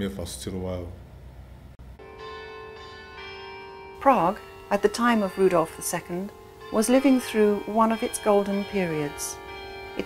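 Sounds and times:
church bells ringing: 2.0 - 10.0.

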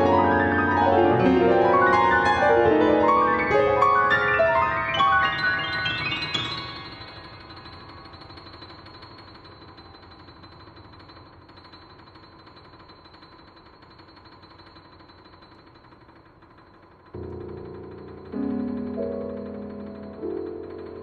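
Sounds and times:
piano notes ringing: 0.0 - 9.2, 17.2 - 21.0.

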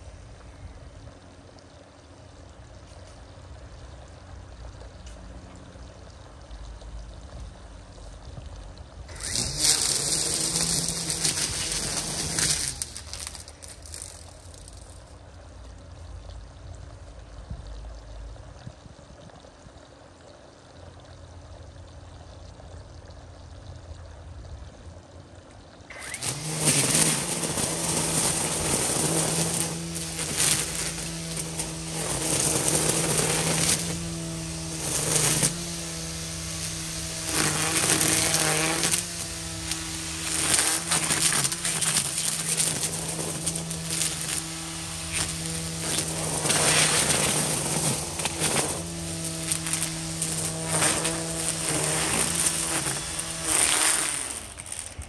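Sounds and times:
string trimmer cutting weeds: 9.1 - 15.1, 25.9 - 55.0.

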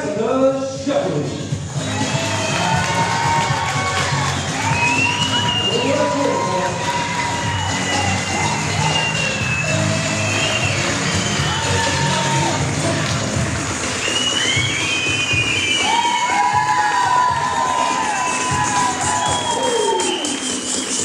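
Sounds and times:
music playing: 0.0 - 21.0
crowd cheering and whooping: 1.6 - 21.0.

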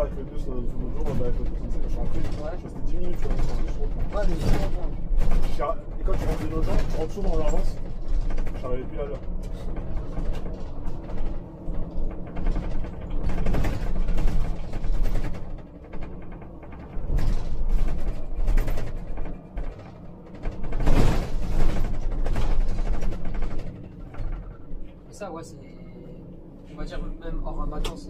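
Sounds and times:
rattles and knocks in cab: 0.0 - 25.0
bus low rumble: 0.0 - 28.0.

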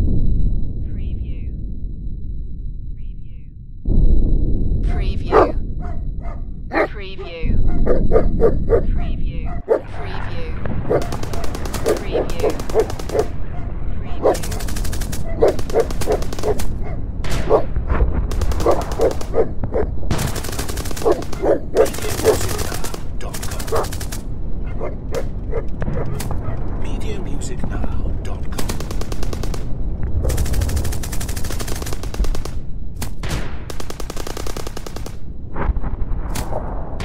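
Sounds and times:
dog barking: 5.3 - 6.9, 7.7 - 10.0, 10.9 - 14.5, 15.2 - 17.7, 18.6 - 19.9, 21.0 - 22.5, 23.7 - 23.9, 24.6 - 26.6
gunfire crackle: 10.6 - 24.4, 25.0 - 37.0.

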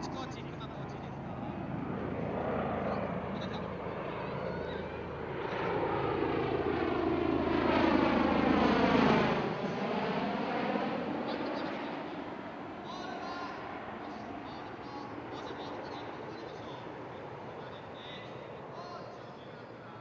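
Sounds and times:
tiltrotor aircraft passing overhead: 0.0 - 20.0.

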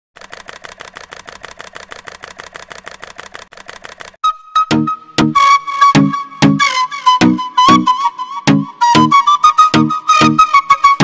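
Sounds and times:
rapid mechanical clicking: 0.2 - 4.2.

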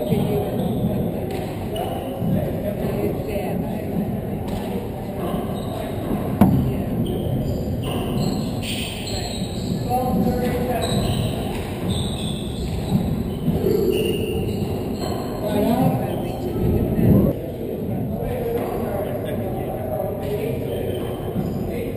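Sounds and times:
shoe squeaks: 0.0 - 1.1, 1.7 - 2.2, 5.2 - 16.6, 20.6 - 21.7.

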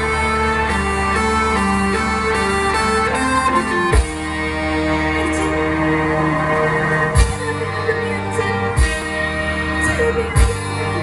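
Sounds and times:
keyboard melody: 0.0 - 11.0
steady bass: 0.0 - 11.0.

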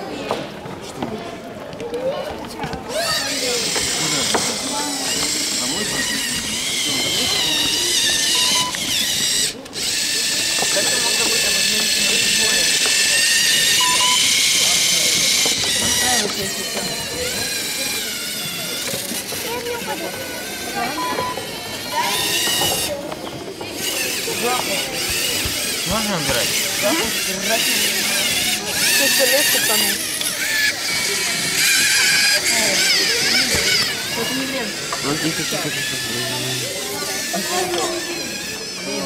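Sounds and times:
murmuring voices: 0.0 - 39.0
people chattering: 0.0 - 39.0
robot motors whining: 2.9 - 39.0.

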